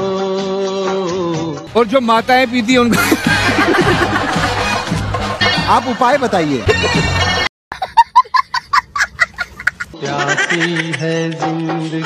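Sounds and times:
small child laughing: 7.7 - 11.3.

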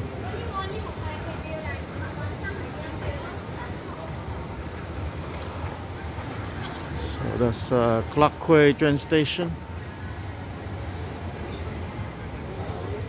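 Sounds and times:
faint voices: 0.0 - 13.0
low city rumble: 0.0 - 13.0.

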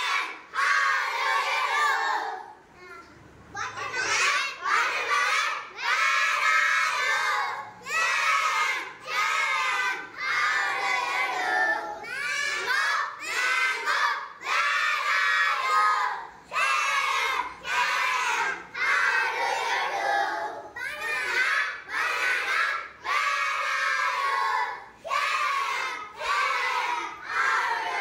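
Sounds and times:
children singing in unison: 0.0 - 2.6, 4.6 - 28.0.

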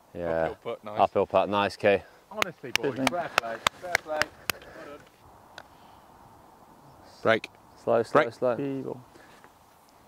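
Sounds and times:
men talking quietly: 0.1 - 5.1, 6.8 - 9.3.

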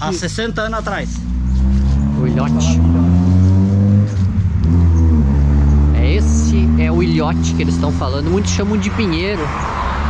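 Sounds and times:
engine running: 0.2 - 9.4.

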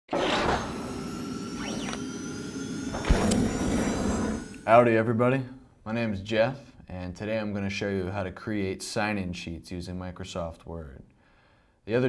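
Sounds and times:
whoosh: 0.1 - 4.8.

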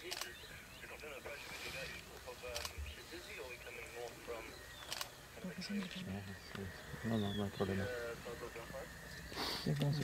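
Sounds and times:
man talking quietly: 0.0 - 4.6.

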